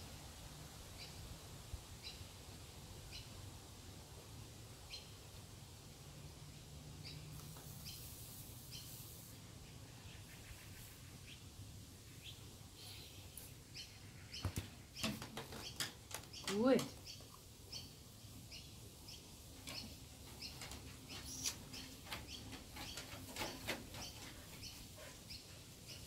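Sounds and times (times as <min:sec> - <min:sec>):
sharp clicks and knocks: 0:14.4 - 0:17.0.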